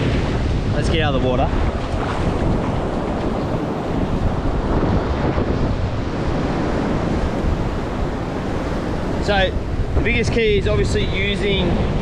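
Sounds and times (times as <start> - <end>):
ocean surf on beach: 0.0 - 12.0
wind buffeting microphone: 0.0 - 12.0.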